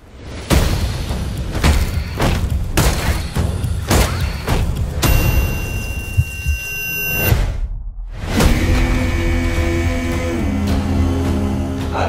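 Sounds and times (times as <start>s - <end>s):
high ringing tones: 5.0s - 7.4s.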